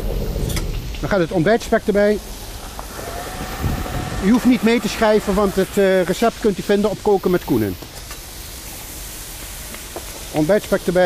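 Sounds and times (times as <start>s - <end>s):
traffic: 0.0s - 11.0s
wind: 0.0s - 11.0s
bacon sizzling in a wok: 0.8s - 11.0s
low rumble: 2.2s - 7.0s.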